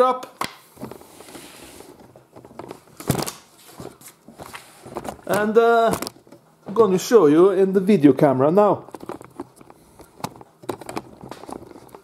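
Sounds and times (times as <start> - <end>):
paper cards rustling and crinkling: 0.4 - 6.5, 8.9 - 12.0.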